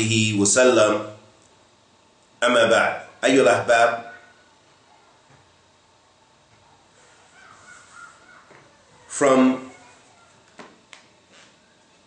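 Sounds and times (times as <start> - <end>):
faint animal call: 4.0 - 5.3, 6.2 - 10.5.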